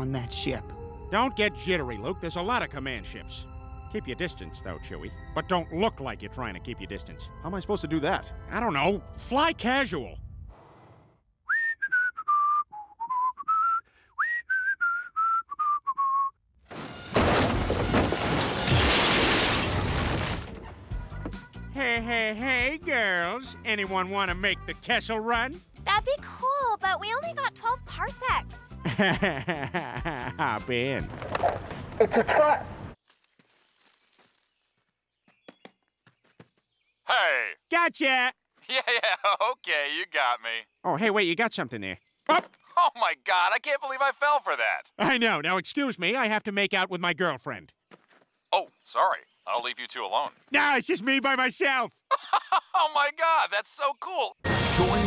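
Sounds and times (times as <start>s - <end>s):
person whistling a tune: 11.5s - 16.4s
faint soft footsteps: 47.9s - 48.4s.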